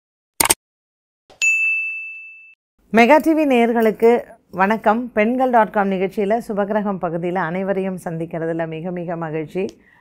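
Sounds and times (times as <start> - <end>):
bright bell ding: 1.4 - 2.6.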